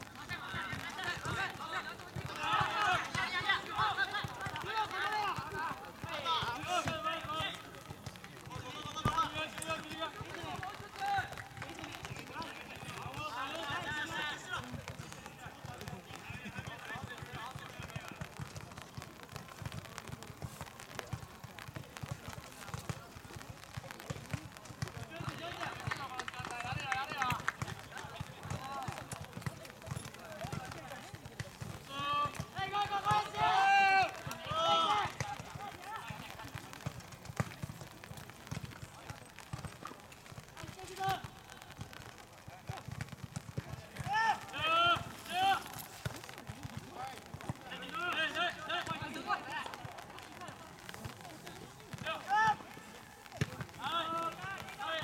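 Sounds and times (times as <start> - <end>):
outdoor background noise: 0.0 - 55.0
players shouting: 0.2 - 18.3, 30.4 - 37.7, 43.6 - 51.0, 51.6 - 55.0.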